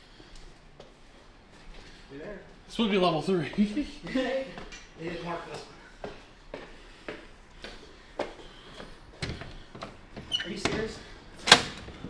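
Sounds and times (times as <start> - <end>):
footsteps on concrete stairs: 3.4 - 11.0.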